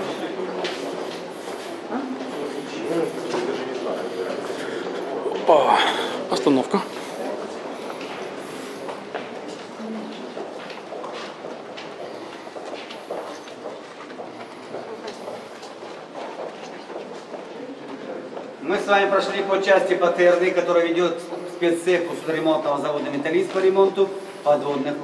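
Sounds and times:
murmured chatter: 0.0s - 25.0s
footsteps on concrete: 0.5s - 2.5s, 7.8s - 17.5s.

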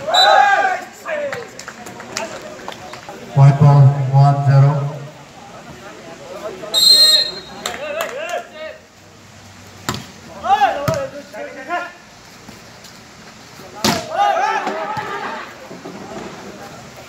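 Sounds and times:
referee whistle blast: 0.0s - 0.4s, 6.7s - 7.6s
voices calling out: 0.0s - 9.0s.

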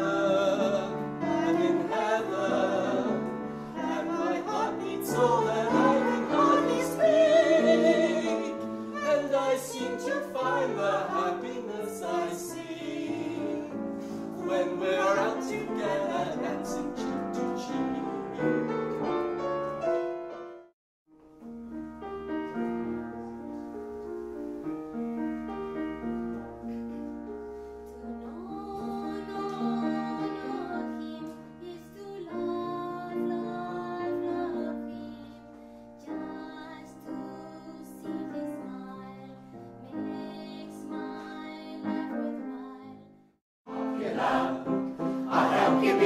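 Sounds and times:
man and woman singing: 0.0s - 18.5s, 43.7s - 46.0s
grand piano: 0.0s - 46.0s
woman singing: 3.8s - 13.6s, 28.0s - 43.1s.

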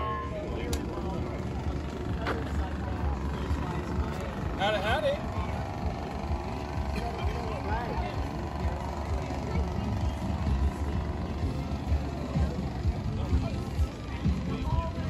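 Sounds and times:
people's voices: 0.0s - 15.0s.

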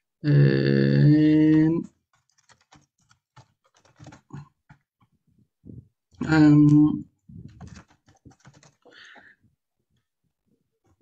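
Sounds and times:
keyboard typing clicks: 2.1s - 4.8s, 7.5s - 8.9s.

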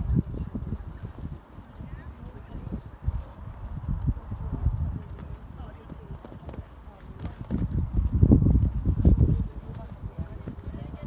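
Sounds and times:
horse hoofbeats on sand: 3.5s - 11.0s.

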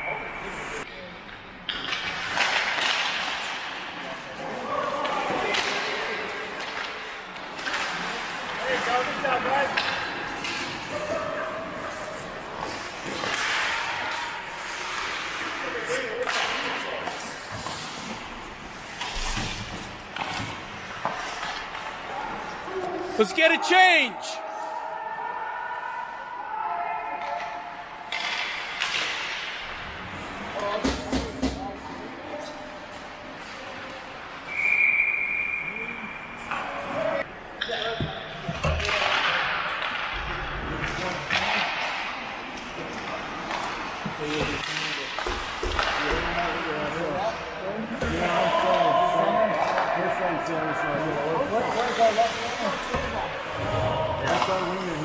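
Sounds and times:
hockey sticks and puck clacking: 0.8s - 24.0s, 27.1s - 31.9s, 37.6s - 50.4s, 54.2s - 55.0s
skates scraping ice: 1.8s - 24.0s, 51.0s - 55.0s
players shouting: 23.0s - 25.3s
referee's whistle: 34.5s - 36.2s.

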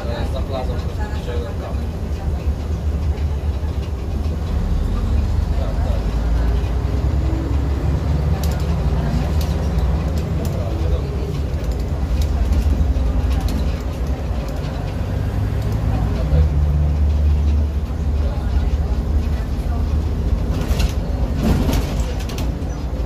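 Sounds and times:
bus diesel engine drone: 0.0s - 23.0s
clicks and rattles from bus body: 0.0s - 23.0s.

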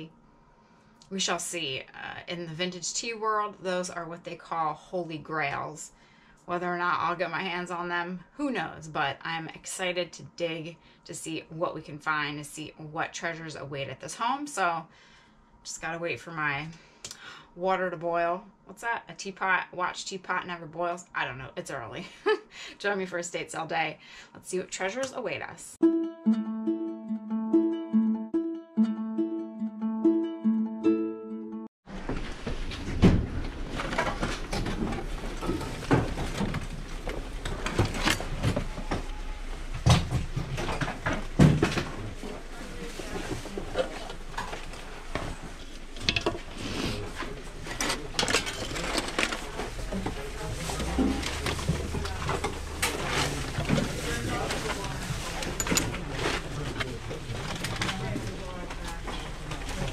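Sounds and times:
plucked-string intro music: 25.8s - 31.7s
room noise: 31.9s - 59.9s
rummaging through metal tools: 47.6s - 58.0s.

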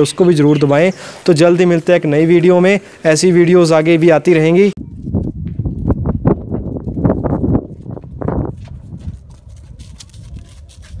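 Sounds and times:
horse hoofbeats cantering: 5.1s - 11.0s.

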